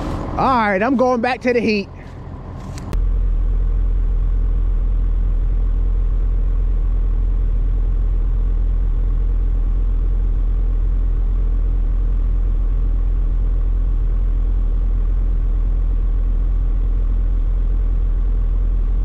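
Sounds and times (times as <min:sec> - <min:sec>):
tractor engine idling: 0:00.0 - 0:19.0.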